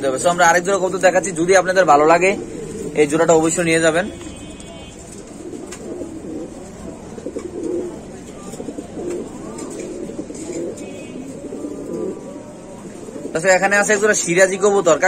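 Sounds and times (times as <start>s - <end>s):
pigeons cooing: 0.0s - 15.0s.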